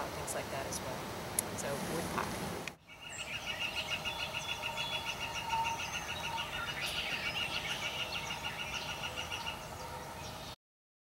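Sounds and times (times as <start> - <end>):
rapid pulsing bird trill: 2.8 - 10.6.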